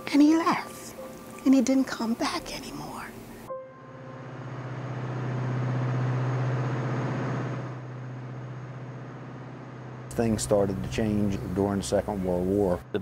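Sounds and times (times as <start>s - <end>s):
motor boat engine running: 3.9s - 13.0s.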